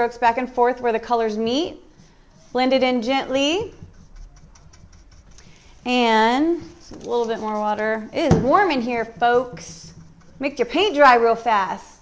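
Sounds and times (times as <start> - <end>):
paintbrush stroking wet paint: 0.8 - 11.9.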